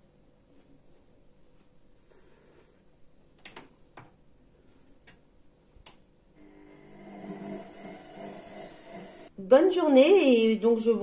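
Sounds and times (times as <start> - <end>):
washing machine humming: 6.4 - 9.3.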